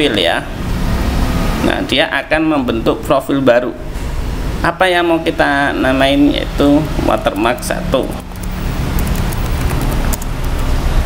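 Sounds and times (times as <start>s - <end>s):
keyboard key clicks: 7.3s - 10.7s.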